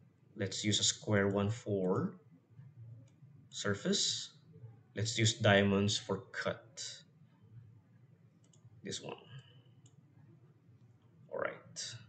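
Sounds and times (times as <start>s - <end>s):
computer mouse clicks: 8.4s - 8.7s.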